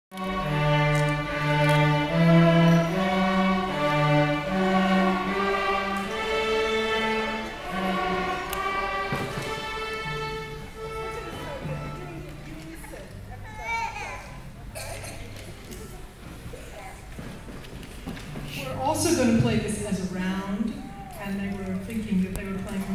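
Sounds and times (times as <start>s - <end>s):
string orchestra slow melody: 0.1s - 14.8s, 18.2s - 22.9s.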